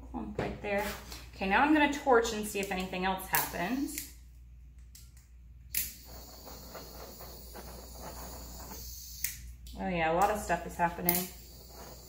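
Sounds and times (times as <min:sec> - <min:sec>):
torch clicking on: 0:05.7 - 0:09.4, 0:11.0 - 0:12.0
torch flame hissing: 0:05.8 - 0:09.4, 0:10.2 - 0:12.0.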